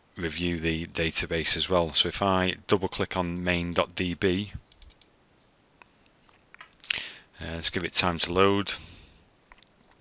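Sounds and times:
man breathing in: 6.8 - 7.3.

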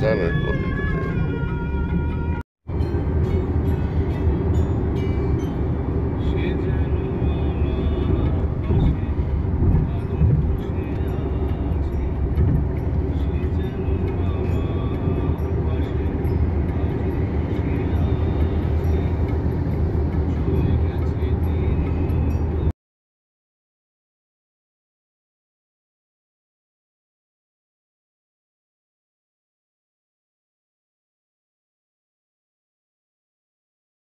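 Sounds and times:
car cabin road and engine rumble: 0.0 - 22.7.

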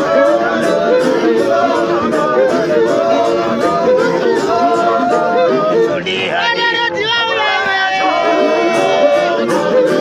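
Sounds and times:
group of men singing: 0.0 - 10.0.

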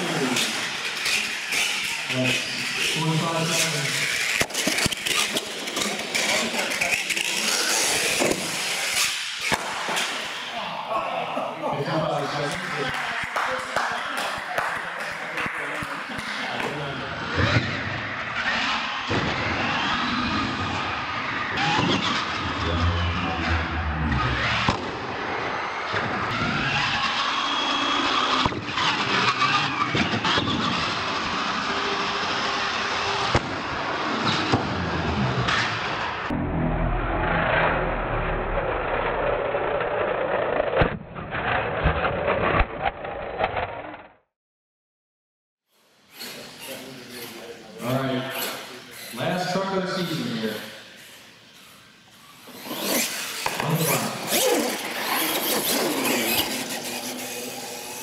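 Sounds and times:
people talking: 0.0 - 0.6, 2.1 - 4.1, 5.8 - 7.6, 10.5 - 17.6, 46.4 - 50.8
toy truck motors whining: 0.0 - 9.6, 25.9 - 33.4, 45.7 - 58.0.

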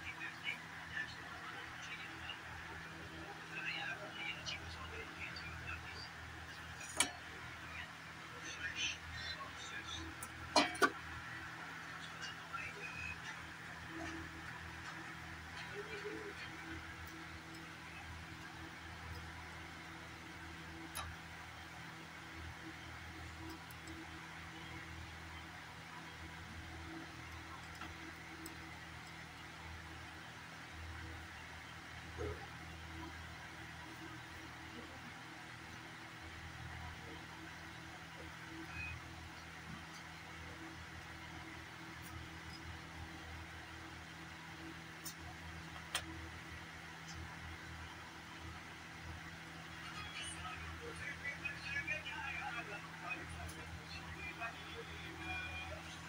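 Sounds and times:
low hum and hiss: 0.0 - 56.0.

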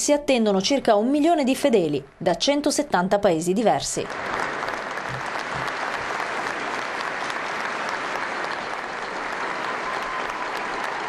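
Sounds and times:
crowd applauding: 4.0 - 11.0.

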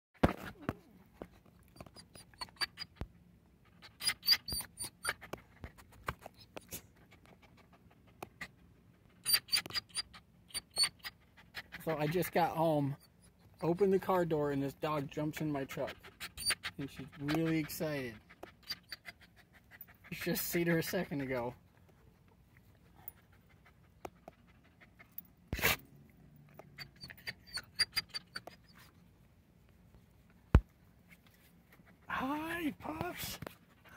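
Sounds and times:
dog panting: 0.5 - 29.0, 31.3 - 33.9.

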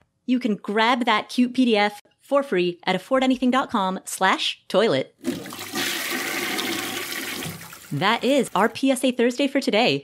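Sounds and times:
toilet flushing: 5.2 - 8.8.

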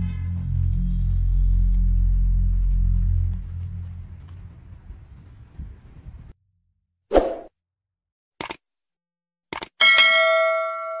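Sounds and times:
quick clicks: 8.4 - 8.6, 9.5 - 9.8
bright bell ding: 9.8 - 11.0.

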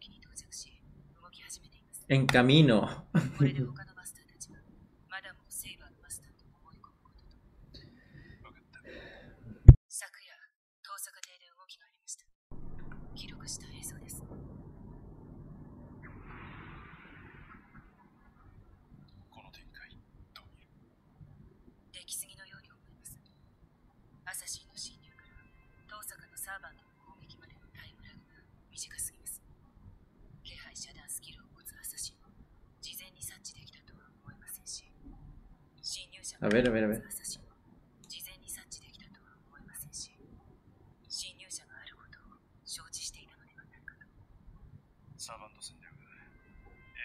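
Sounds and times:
whispery speech: 0.0 - 7.1, 13.2 - 14.2, 19.3 - 20.7, 22.0 - 23.2, 24.3 - 29.4, 30.5 - 32.2, 32.8 - 35.0, 35.8 - 37.5, 38.1 - 40.2, 41.1 - 44.2, 45.2 - 47.0
steady low noise: 12.5 - 20.3
faint whispery hissing speech: 13.2 - 14.2, 19.3 - 20.7, 30.5 - 32.2, 32.8 - 34.9, 38.1 - 40.2, 41.1 - 44.2.

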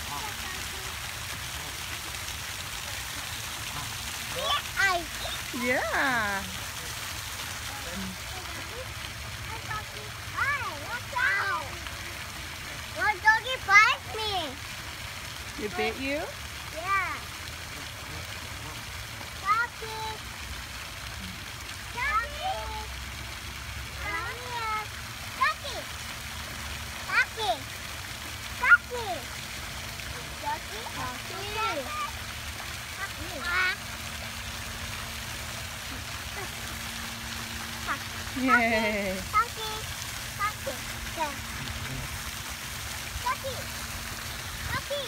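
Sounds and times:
pond fountain splashing: 0.0 - 45.0.

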